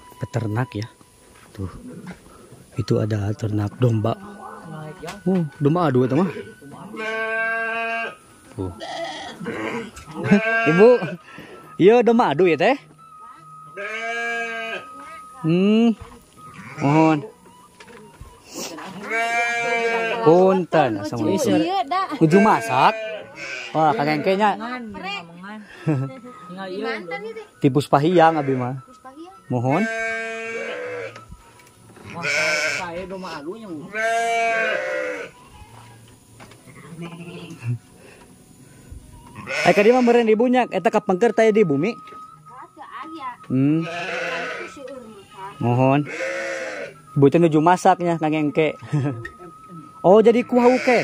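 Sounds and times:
sheep bleating: 6.1s - 11.2s, 13.8s - 15.1s, 16.5s - 17.3s, 19.0s - 20.5s, 21.3s - 24.6s, 28.1s - 28.8s, 29.7s - 31.2s, 32.0s - 35.4s, 39.4s - 40.4s, 43.5s - 47.0s, 50.5s - 51.0s.

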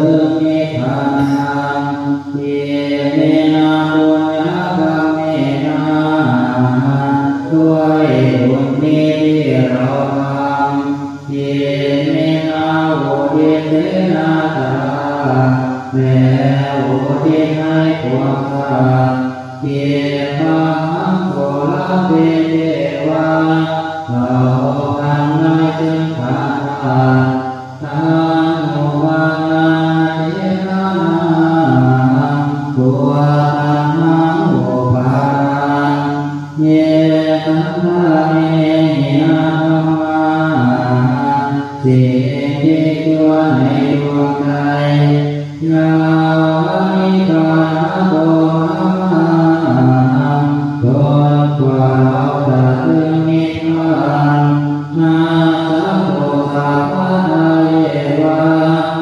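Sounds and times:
monks chanting in unison: 0.0s - 59.0s.

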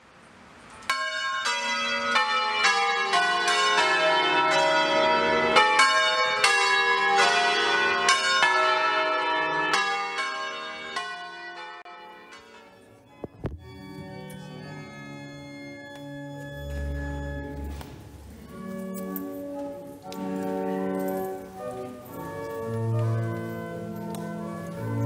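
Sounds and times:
church bells ringing: 0.8s - 25.0s.

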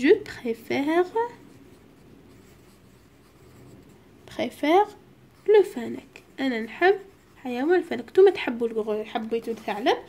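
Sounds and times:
pencil scratching on paper: 0.7s - 10.0s.

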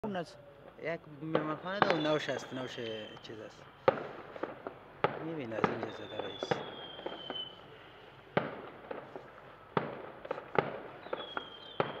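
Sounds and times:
fireworks bangs: 0.7s - 12.0s
firework whistle: 1.8s - 4.4s, 5.7s - 7.9s, 10.9s - 12.0s.

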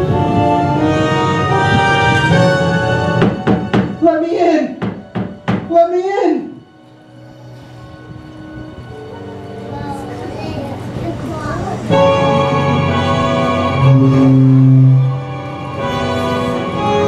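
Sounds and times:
soft low music: 0.0s - 17.0s.

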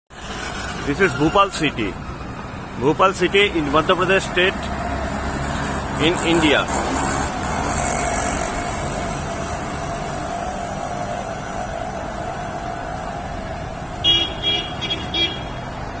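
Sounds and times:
street traffic noise: 0.1s - 16.0s
vehicle horn toots: 14.0s - 15.7s.

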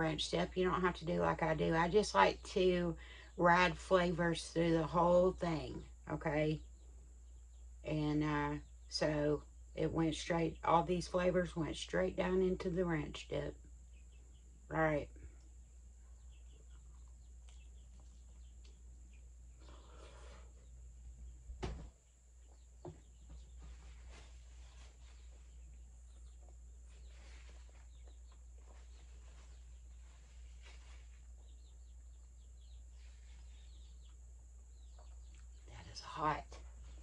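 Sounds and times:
low steady hum: 0.0s - 37.0s
faint bird chirps: 13.6s - 37.0s.

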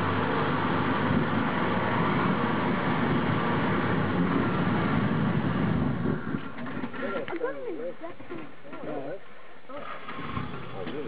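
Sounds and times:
car engine under load: 0.0s - 11.0s.

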